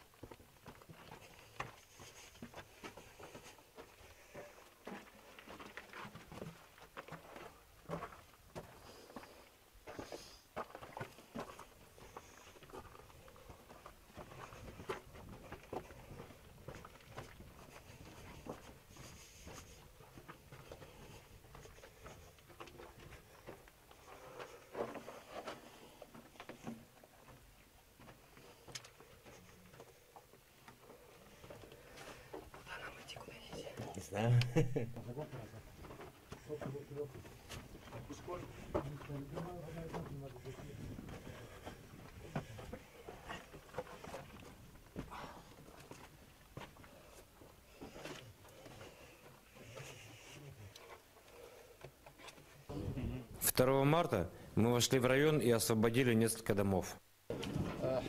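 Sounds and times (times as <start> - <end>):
footsteps in tunnel: 0.0 - 32.7, 35.0 - 51.6.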